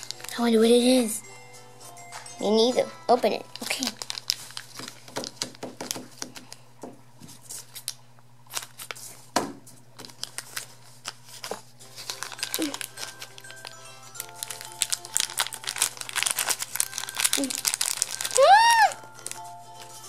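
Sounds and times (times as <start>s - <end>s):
plastic bag crinkling and tearing: 0.0s - 1.0s, 3.5s - 6.6s, 7.5s - 9.3s, 9.9s - 20.0s.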